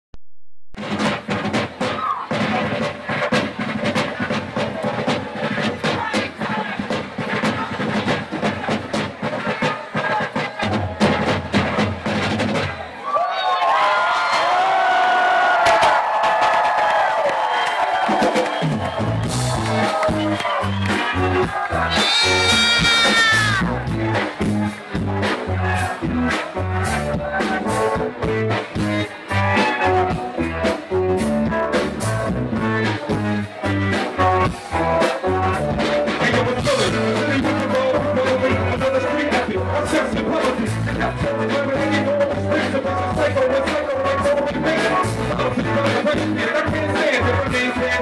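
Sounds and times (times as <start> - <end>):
busy drum beat: 0.8 - 13.0, 15.6 - 48.0
live band playing loud music: 0.8 - 13.0, 15.5 - 48.0.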